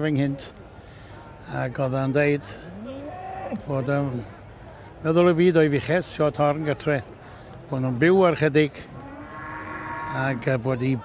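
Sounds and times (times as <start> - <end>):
cow mooing: 9.0 - 10.4.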